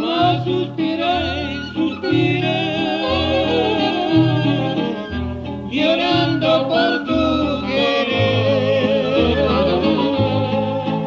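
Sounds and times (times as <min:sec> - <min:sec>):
bass notes: 0:00.0 - 0:11.0
guitar: 0:00.0 - 0:11.0
wavering lead melody: 0:01.3 - 0:11.0.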